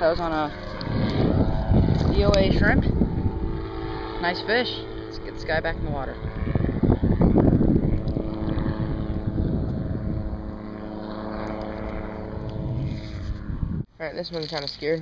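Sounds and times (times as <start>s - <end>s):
steady engine drone: 0.0s - 15.0s.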